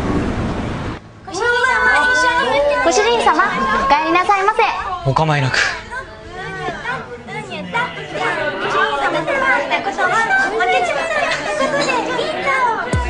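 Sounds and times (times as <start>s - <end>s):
people chattering: 1.2s - 13.0s.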